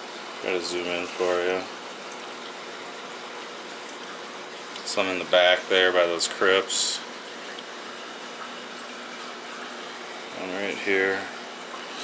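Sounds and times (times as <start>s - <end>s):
aquarium filter water bubbling: 0.0s - 12.0s.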